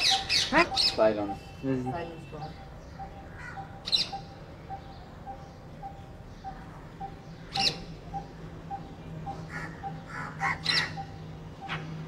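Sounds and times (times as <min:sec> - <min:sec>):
bird squawking: 0:00.0 - 0:11.9.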